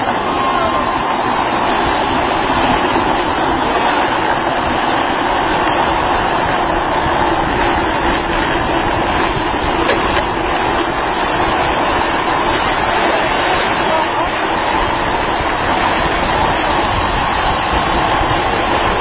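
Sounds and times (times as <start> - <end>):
plastic wheels rolling on asphalt: 0.0 - 19.0.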